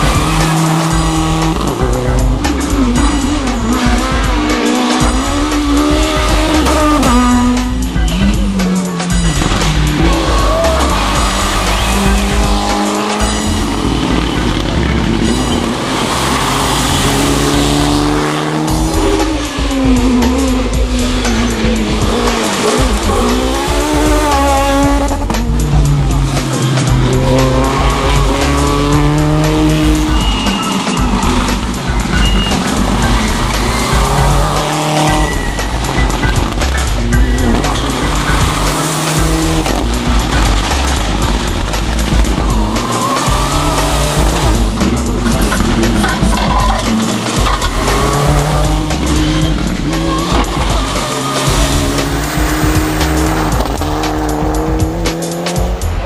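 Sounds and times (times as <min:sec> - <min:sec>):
music with steady bass beat: 0:00.0 - 0:56.0
rally car engines revving: 0:00.0 - 0:56.0
tyre noise: 0:00.0 - 0:56.0.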